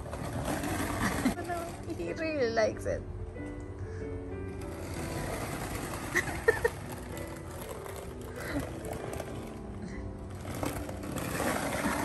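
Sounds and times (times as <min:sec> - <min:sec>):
skateboard wheels rolling on concrete: 0:00.0 - 0:02.4, 0:04.5 - 0:12.0.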